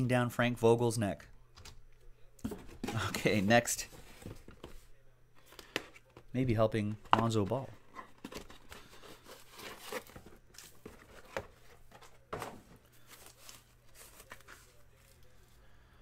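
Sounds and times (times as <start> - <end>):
paper and foam rustling: 7.2 - 15.3.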